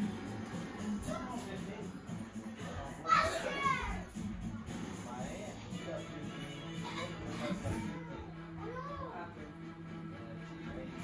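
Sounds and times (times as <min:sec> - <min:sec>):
child yelling: 0:03.0 - 0:04.0, 0:07.9 - 0:09.2
children playing: 0:03.0 - 0:04.2, 0:06.8 - 0:09.3.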